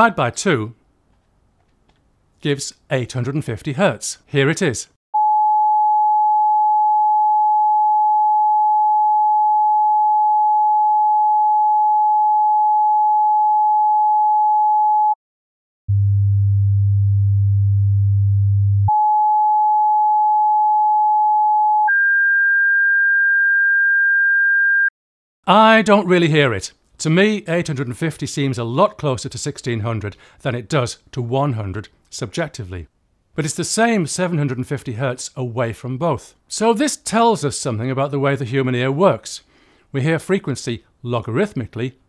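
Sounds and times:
sine wave test tones: 0:05.2 - 0:15.2, 0:15.9 - 0:24.9.

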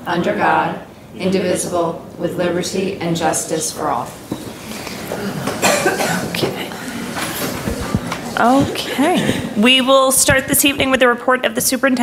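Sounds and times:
people shuffling: 0:03.9 - 0:11.0.

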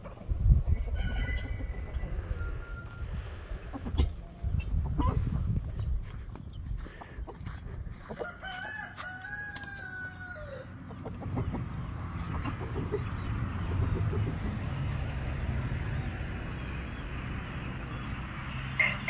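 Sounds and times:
rooster crowing: 0:00.9 - 0:03.2, 0:08.2 - 0:10.8, 0:18.8 - 0:19.0
low rumbling noise: 0:11.2 - 0:18.8.

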